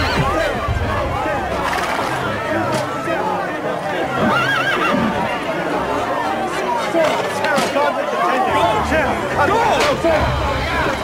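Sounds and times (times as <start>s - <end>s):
voices: 0.0s - 11.0s
horse whinnying: 4.2s - 5.2s.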